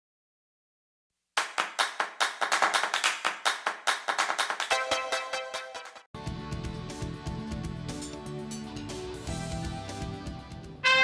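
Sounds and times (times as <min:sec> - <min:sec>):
hand clapping: 0:01.4 - 0:05.4.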